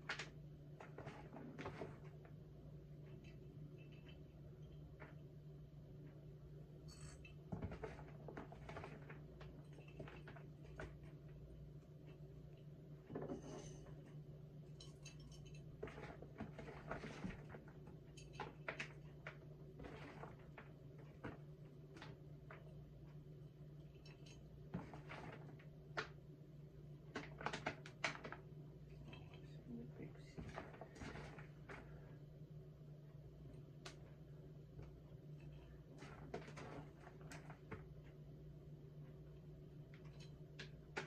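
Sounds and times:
low steady hum: 0.0 - 41.0.

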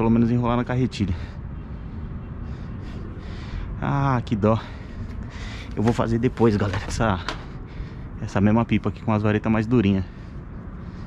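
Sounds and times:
wind buffeting microphone: 0.0 - 11.0
soft breaths: 1.1 - 3.8, 4.5 - 8.2, 10.0 - 11.0.

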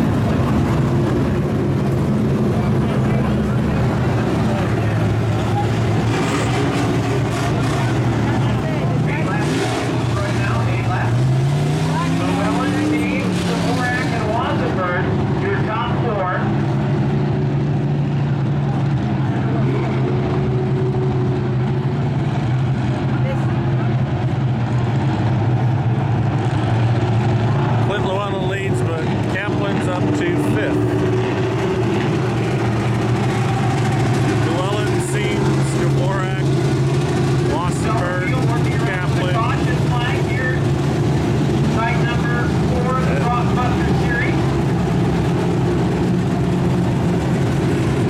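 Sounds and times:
race car engines droning: 0.0 - 48.0
car engine passing by: 2.6 - 14.5.

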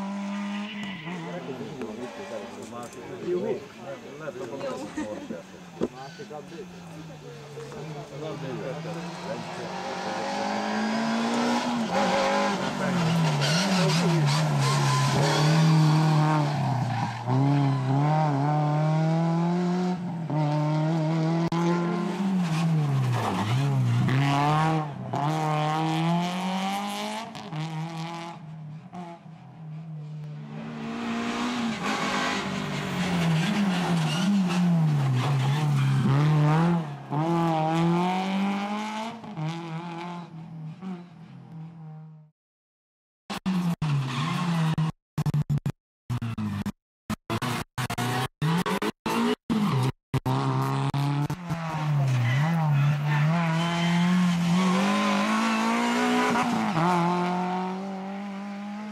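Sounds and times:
rally car engine revving hard: 8.3 - 29.2, 30.4 - 41.1, 47.3 - 58.9.

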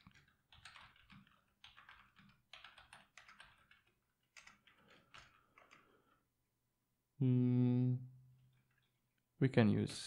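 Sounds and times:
computer keyboard typing: 0.0 - 6.2.

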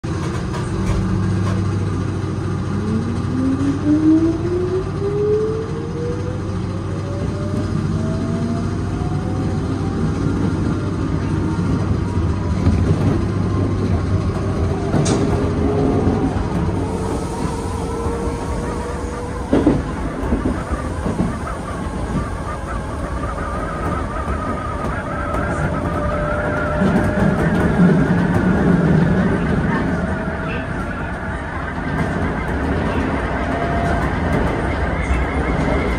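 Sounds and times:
wheels running on rails: 0.0 - 35.9
wheels clicking over rail joints: 9.8 - 35.9.

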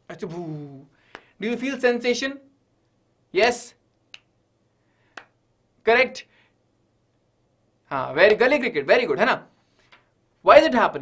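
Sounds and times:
sharp hand clicks: 3.9 - 4.4.

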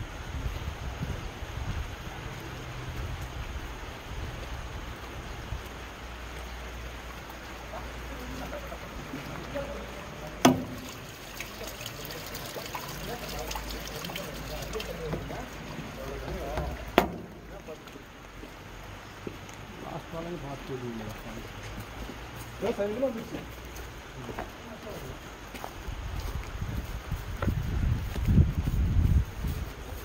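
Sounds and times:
rainwater trickling and dripping: 0.0 - 30.0
light dripping ticks: 2.1 - 8.7, 10.4 - 25.8
faint voices: 7.4 - 21.8
sharp knock: 10.4 - 10.9, 17.0 - 17.4.

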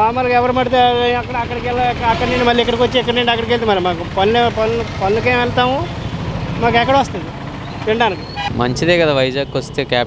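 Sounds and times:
man speaking: 0.0 - 5.9, 6.6 - 10.0
street traffic: 0.0 - 10.0
vehicle engine idling: 0.0 - 10.0.

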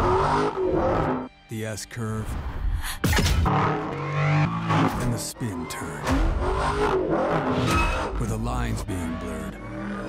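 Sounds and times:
car engine revving: 0.0 - 1.3, 3.4 - 10.0
tires squealing on asphalt: 3.5 - 8.2.

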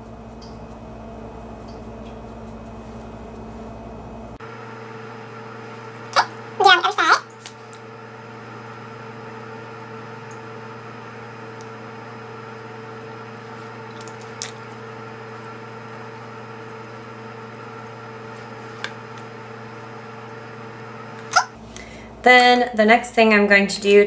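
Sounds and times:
mechanical hum: 0.0 - 24.0.

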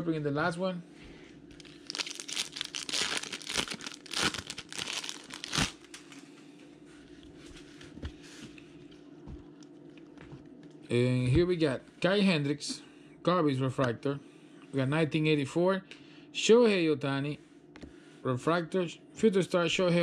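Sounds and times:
faint steady hum: 0.0 - 20.0
foil wrapper crinkling and tearing: 1.6 - 6.2.

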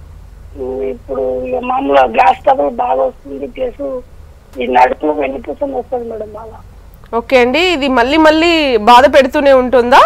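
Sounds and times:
caller talking over telephone: 0.6 - 4.0, 4.6 - 6.6.

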